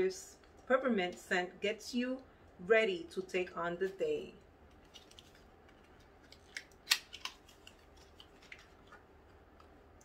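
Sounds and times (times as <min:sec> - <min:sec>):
paper wrapper crinkling: 0:04.7 - 0:09.8.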